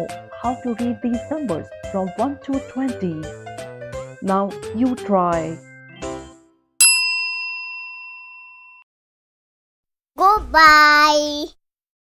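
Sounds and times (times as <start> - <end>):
bright bell ding: 6.8 - 8.8.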